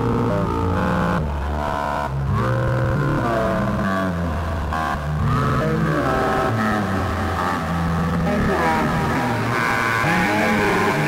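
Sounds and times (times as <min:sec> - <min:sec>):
bass guitar: 0:00.0 - 0:11.0
distorted electric guitar: 0:00.0 - 0:11.0.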